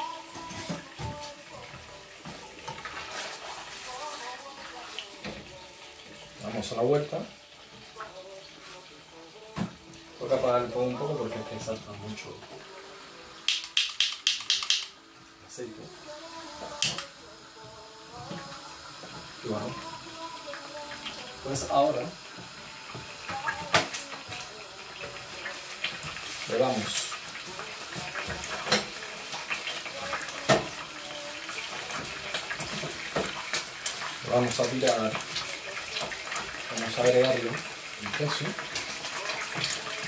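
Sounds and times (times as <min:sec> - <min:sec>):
hot oil popping in frying pan: 0:13.4 - 0:15.0, 0:22.4 - 0:40.0.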